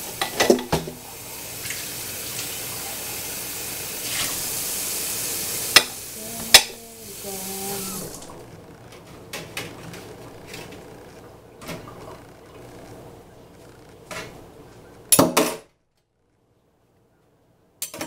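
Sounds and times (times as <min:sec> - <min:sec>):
tap water running into sink: 0:00.0 - 0:06.7.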